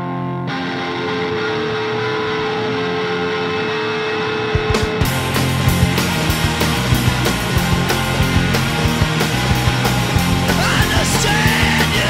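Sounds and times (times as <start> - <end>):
distorted electric guitar note: 0.0 - 12.0
sharp drum hits: 4.6 - 9.2.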